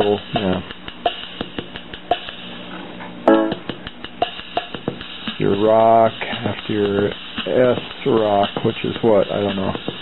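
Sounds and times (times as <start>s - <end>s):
electronic drum ticks: 0.0s - 2.4s, 3.3s - 10.0s
keyboard accompaniment note: 3.3s - 3.7s.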